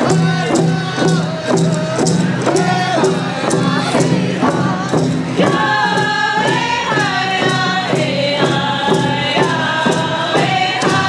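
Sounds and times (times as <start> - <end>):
group chant-like singing: 0.0 - 11.0
hand drums steady beat: 0.0 - 11.0.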